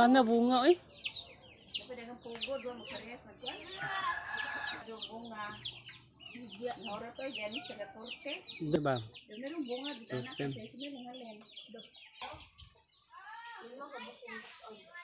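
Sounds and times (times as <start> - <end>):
chickens clucking: 0.0 - 15.0.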